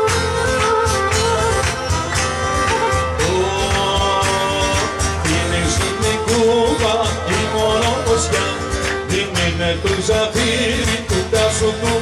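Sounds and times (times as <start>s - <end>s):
strummed guitar: 0.0s - 12.0s
man singing: 3.1s - 12.0s.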